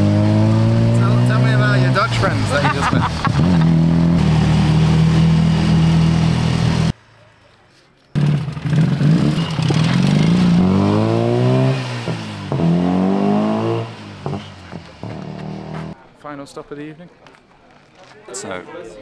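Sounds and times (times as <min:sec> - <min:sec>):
tuk-tuk engine running: 0:00.0 - 0:06.9, 0:08.2 - 0:16.0.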